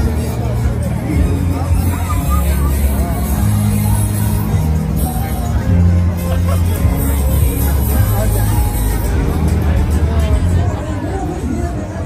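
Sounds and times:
voices of passers-by: 0.0s - 12.0s.

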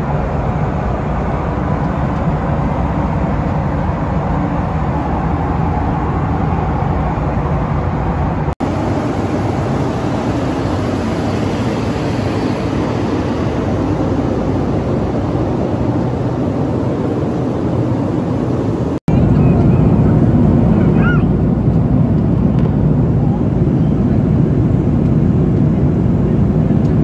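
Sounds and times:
airplane cabin engine rush: 0.0s - 27.0s.

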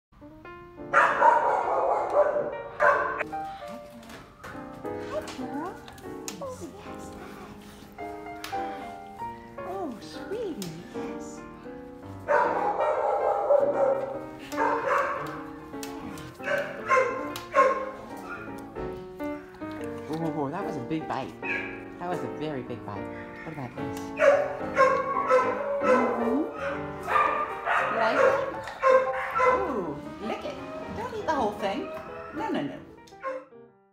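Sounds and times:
background music: 0.2s - 33.9s
dogs barking: 0.9s - 3.3s, 12.1s - 20.0s, 21.2s - 33.5s.

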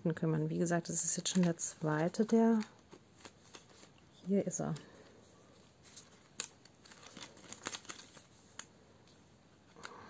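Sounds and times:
plastic sleeves rustling and crinkling: 0.6s - 10.0s.

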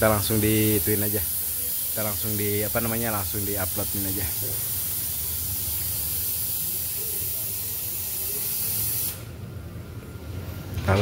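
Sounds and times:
compressed air hissing: 0.0s - 9.4s.

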